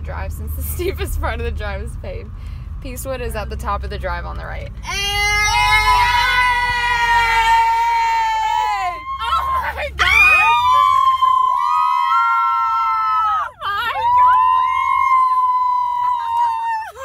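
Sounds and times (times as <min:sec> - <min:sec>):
car engine and road hum: 0:00.0 - 0:17.0
women screaming: 0:04.9 - 0:17.0.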